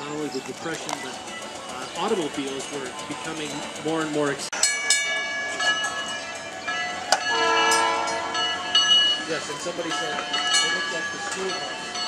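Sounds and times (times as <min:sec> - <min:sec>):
streetcar rolling past: 0:00.0 - 0:12.0.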